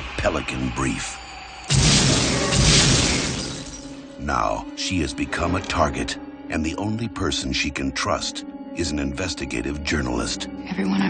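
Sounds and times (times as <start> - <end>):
explosion blast: 1.7 - 3.9
glass shattering: 1.7 - 4.1.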